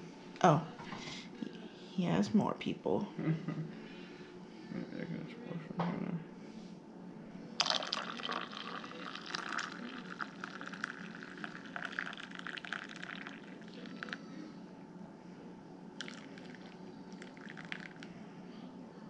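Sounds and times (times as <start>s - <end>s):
hot chocolate pouring into mug: 7.6s - 14.2s, 16.0s - 18.1s.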